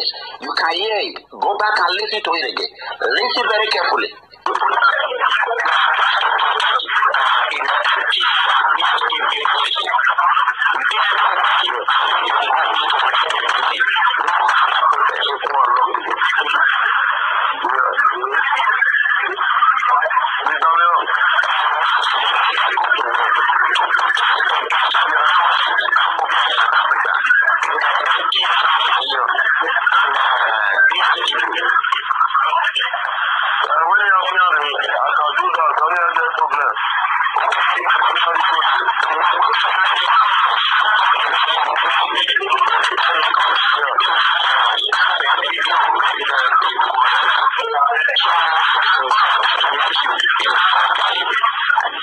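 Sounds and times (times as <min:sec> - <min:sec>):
muffled recorded conversation: 0:00.0 - 0:52.0.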